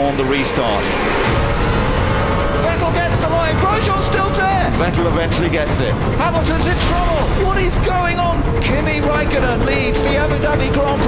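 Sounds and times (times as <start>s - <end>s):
racing car engine drone: 0.0s - 11.0s.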